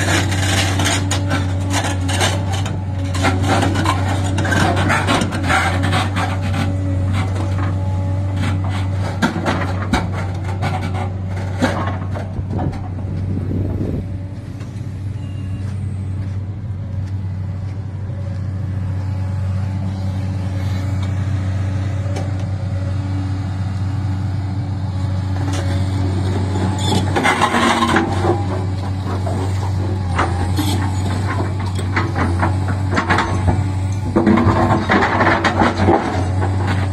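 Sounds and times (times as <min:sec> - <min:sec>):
diesel engine droning: 0:00.0 - 0:36.9
steel and stone scraping: 0:26.3 - 0:36.9.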